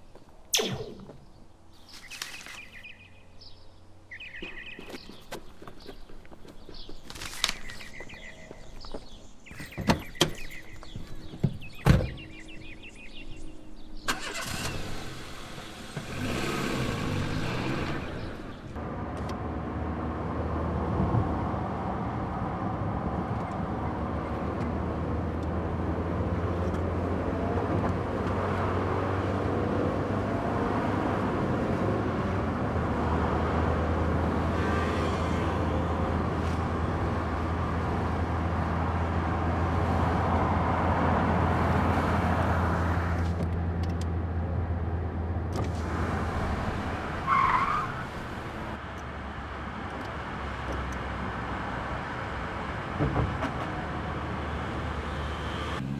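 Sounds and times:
tyre and road noise: 0.0 - 55.9.

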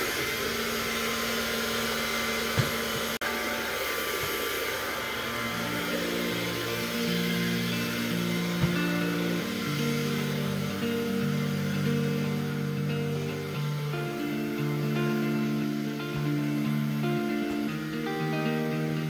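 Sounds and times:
stick vacuum cleaner running: 0.0 - 19.0
plucked melody background music: 5.4 - 19.0.

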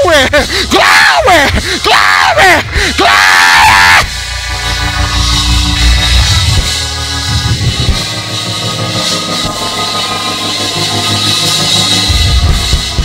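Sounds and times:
band sustained chords: 0.0 - 13.0
bass line: 0.1 - 13.0.

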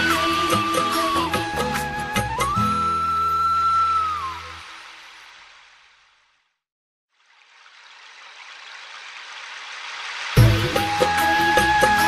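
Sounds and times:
flute holding high note: 0.9 - 4.6.

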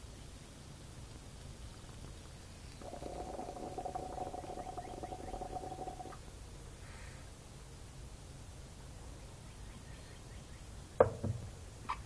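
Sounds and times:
glass pipe whistling tone: 2.8 - 6.1.

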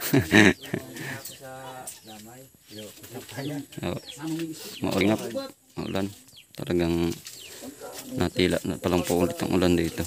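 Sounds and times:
person laughing: 0.0 - 1.2
people talking in background: 0.0 - 10.0.

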